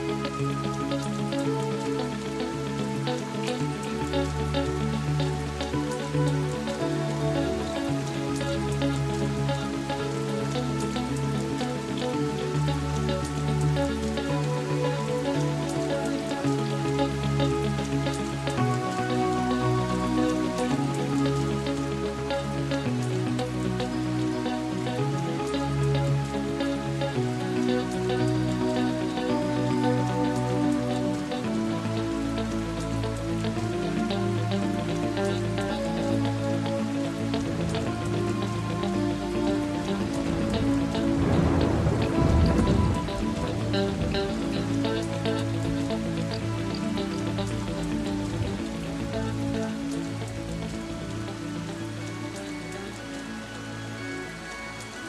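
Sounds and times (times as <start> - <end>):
rain: 0.0 - 55.0.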